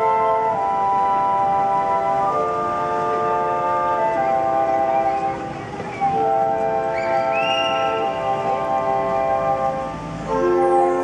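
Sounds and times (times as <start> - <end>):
wind band playing chords: 0.0 - 11.0.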